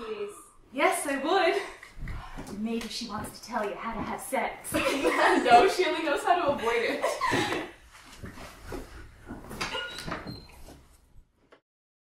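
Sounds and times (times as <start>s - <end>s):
door squeak: 9.6s - 10.8s.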